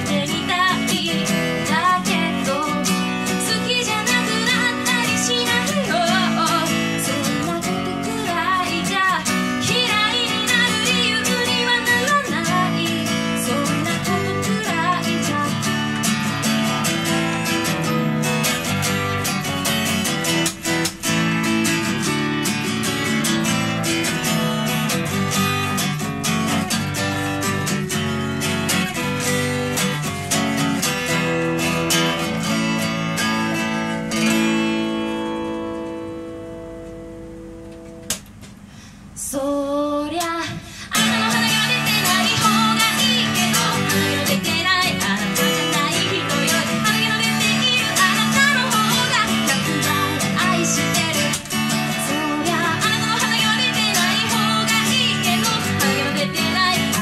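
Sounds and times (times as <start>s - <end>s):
woman singing: 0.0s - 16.3s, 39.2s - 57.0s
acoustic guitar strumming: 0.0s - 38.9s, 40.7s - 57.0s.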